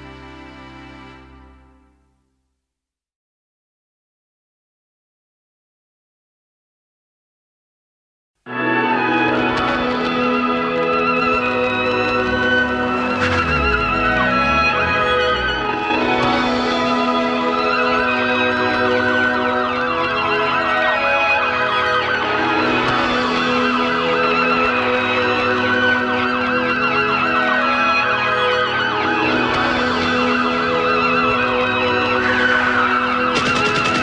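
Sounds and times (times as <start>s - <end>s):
wailing siren: 10.0s - 22.3s
synthesizer chords: 11.4s - 17.2s.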